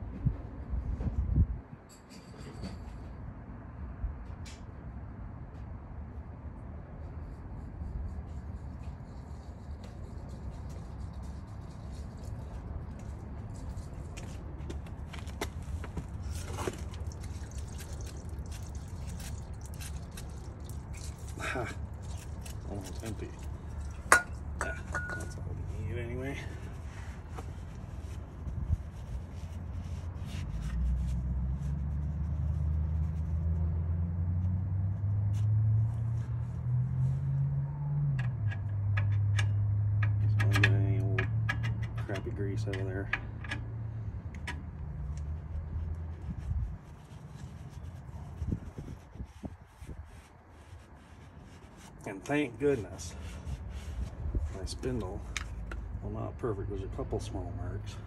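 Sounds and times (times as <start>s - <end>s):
low engine hum: 10.0s - 58.0s.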